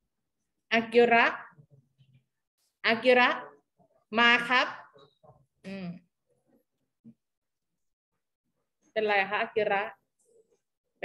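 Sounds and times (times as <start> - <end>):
woman speaking: 0.7 - 1.6, 2.8 - 5.0, 9.0 - 10.0.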